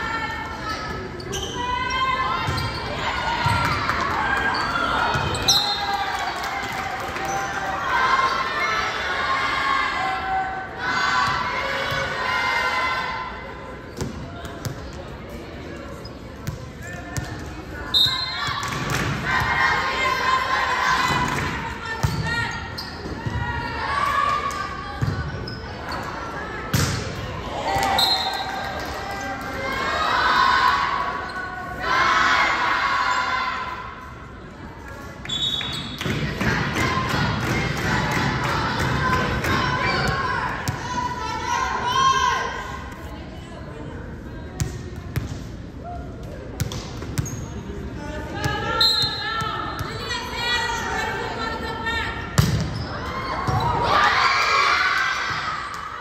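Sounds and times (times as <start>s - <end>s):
volleyball strikes echoing: 26.7s - 28.0s, 52.4s - 54.0s.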